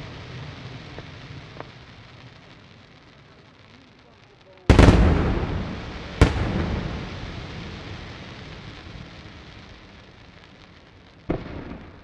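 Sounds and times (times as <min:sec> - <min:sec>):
firework crackling: 0:00.0 - 0:12.0
firework bangs echoing: 0:04.6 - 0:12.0.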